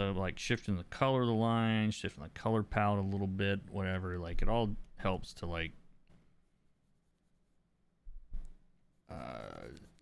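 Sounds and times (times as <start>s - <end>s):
man saying uh: 9.1s - 9.9s.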